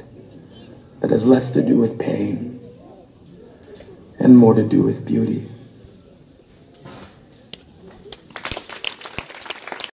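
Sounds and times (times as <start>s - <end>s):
audience applause: 8.1s - 10.0s.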